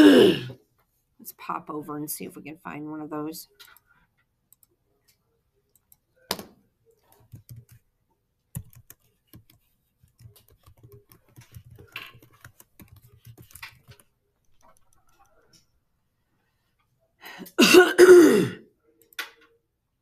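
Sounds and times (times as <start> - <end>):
computer keyboard typing: 7.0 - 7.8, 8.5 - 15.5.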